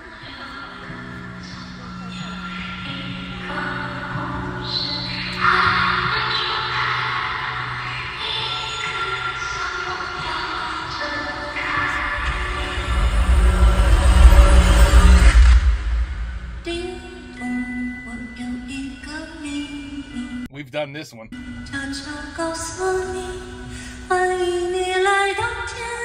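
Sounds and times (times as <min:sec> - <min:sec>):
deep bass swell: 0:11.7 - 0:17.1.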